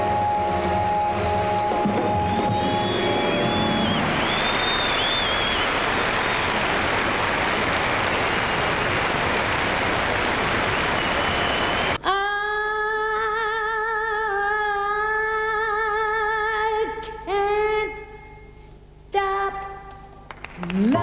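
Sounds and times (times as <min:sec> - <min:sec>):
whistles from audience: 0:00.0 - 0:06.9, 0:07.7 - 0:09.2, 0:10.5 - 0:12.0
audience applauding: 0:02.1 - 0:12.0, 0:20.3 - 0:21.0.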